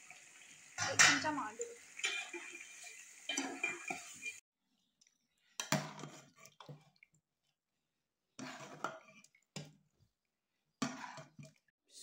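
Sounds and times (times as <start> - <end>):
metal spoon scraping a pot: 2.0 - 4.4, 5.6 - 6.9, 8.3 - 9.7, 10.8 - 11.6.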